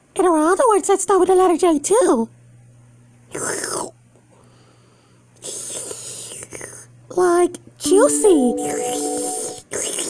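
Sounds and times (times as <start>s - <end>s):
faint low hum: 2.3s - 10.0s.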